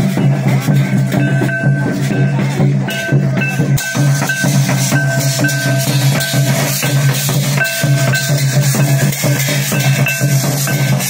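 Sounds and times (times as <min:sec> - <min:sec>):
brass cymbals clashing: 0:00.0 - 0:11.0
kettle drum: 0:00.0 - 0:11.0
stick-beaten barrel drums: 0:00.0 - 0:11.0
low ringing tone: 0:00.8 - 0:11.0.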